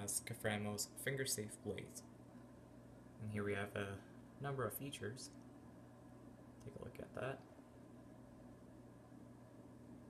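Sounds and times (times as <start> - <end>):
faint steady low hum: 0.0 - 10.0.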